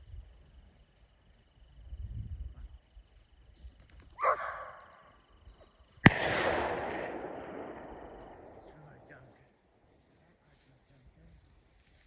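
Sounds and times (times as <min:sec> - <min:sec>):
gunshot with echo: 0:06.0 - 0:09.2
faint soft burst: 0:06.0 - 0:11.6.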